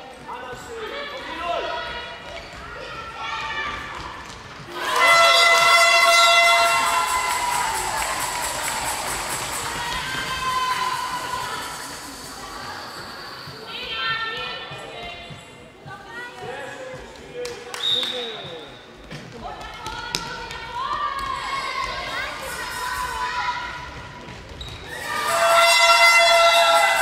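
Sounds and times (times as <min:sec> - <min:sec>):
people shouting: 0:04.7 - 0:12.8, 0:24.9 - 0:27.0
spectators screaming: 0:04.7 - 0:13.6, 0:24.9 - 0:27.0
ball bouncing on hall floor: 0:19.0 - 0:22.3, 0:23.8 - 0:24.9.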